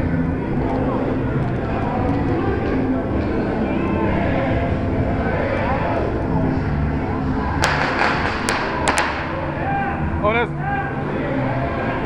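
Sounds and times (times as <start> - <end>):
firecrackers banging: 7.5 - 9.5.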